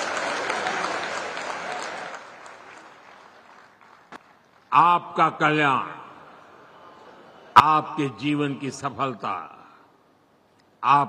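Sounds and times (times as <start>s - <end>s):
crowd applause: 0.0s - 4.7s.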